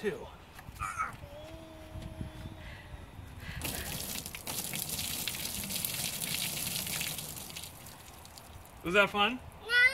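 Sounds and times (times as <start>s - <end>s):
water splashing onto wooden deck: 3.6s - 8.9s.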